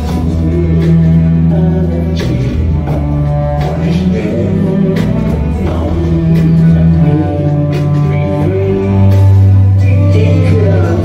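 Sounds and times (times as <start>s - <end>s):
bowed cello low notes: 0.0s - 11.0s
drum kit: 0.0s - 11.0s
electric guitar: 0.0s - 11.0s.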